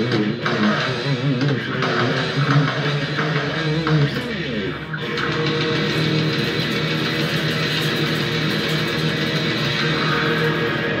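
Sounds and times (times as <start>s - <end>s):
electric guitar metal passage: 1.8s - 11.0s.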